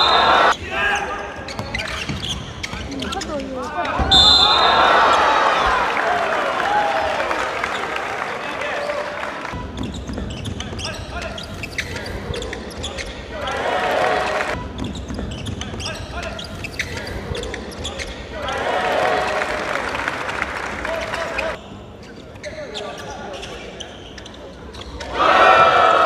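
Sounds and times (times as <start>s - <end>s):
players shouting: 0.0s - 1.4s, 3.6s - 9.6s, 12.9s - 14.6s, 18.2s - 21.6s, 25.1s - 26.0s.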